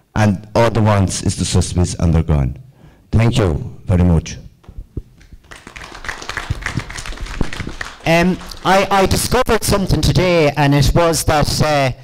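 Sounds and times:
audience applauding: 0:05.3 - 0:09.5.

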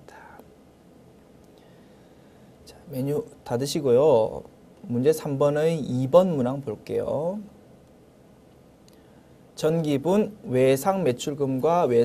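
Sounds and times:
soft breathy voice: 0:00.0 - 0:00.5
room hiss: 0:00.0 - 0:12.0.

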